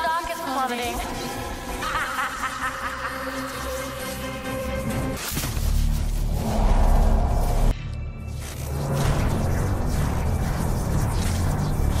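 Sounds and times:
electrical buzzing and crackling: 8.3 - 12.0.

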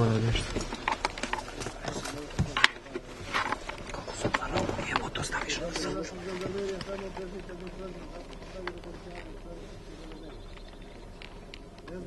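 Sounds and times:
muffled men's conversation: 0.0 - 0.7, 1.3 - 11.0, 11.7 - 12.0.

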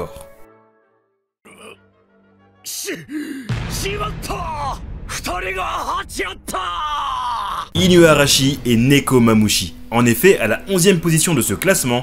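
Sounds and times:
character gasping yells: 2.7 - 3.5
low rumble: 3.5 - 10.0.

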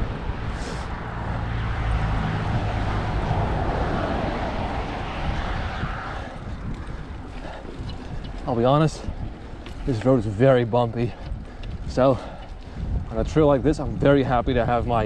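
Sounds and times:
wind buffeting microphone: 0.0 - 15.0
car driving past: 0.5 - 6.4
bike rolling over bumpy dirt: 2.3 - 15.0.

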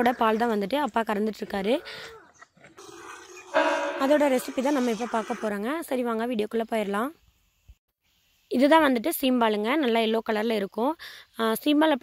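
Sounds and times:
cattle mooing: 2.8 - 5.5.

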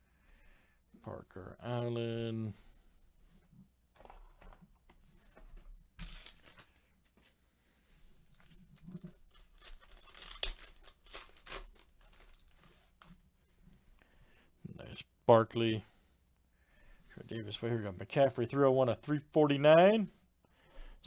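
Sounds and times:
foil wrapper tearing and crinkling: 6.0 - 6.8, 8.3 - 13.1.

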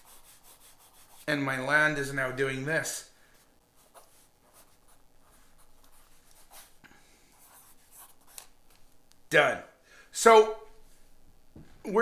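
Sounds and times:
pencil scratching on paper: 0.0 - 1.4, 3.8 - 8.5.

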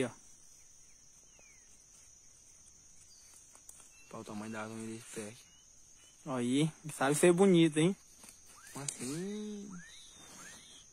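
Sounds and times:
high-pitched insect chirring: 0.0 - 10.9.

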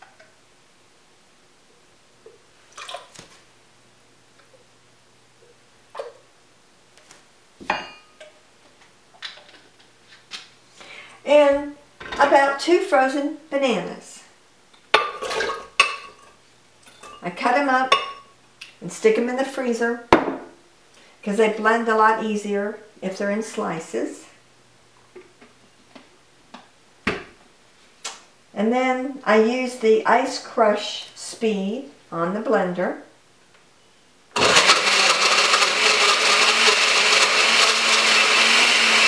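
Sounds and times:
glass clinking with ring: 7.7 - 8.3
kitchenware tapping and knocking: 20.2 - 20.5.

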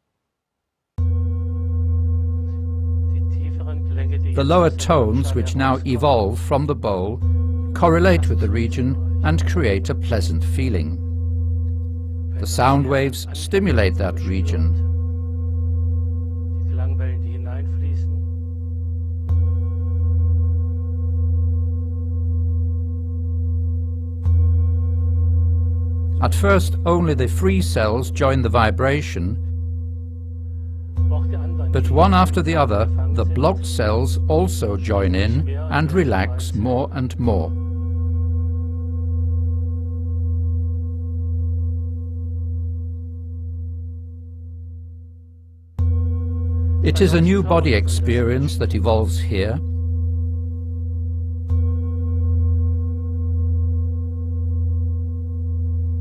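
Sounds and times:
singing bowl ringing: 1.0 - 56.0.

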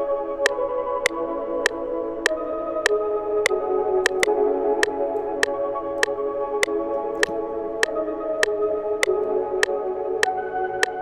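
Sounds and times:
synth pad chords with melody: 0.0 - 11.0
sharp metronome clicks: 1.0 - 9.8.

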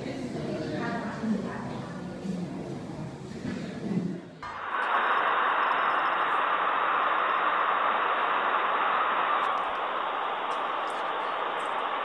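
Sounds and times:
steady hiss of noise: 0.0 - 12.0.

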